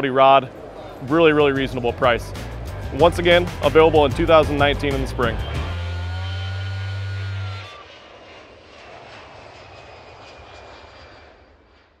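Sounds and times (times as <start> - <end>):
airplane flying by: 0.0 - 12.0.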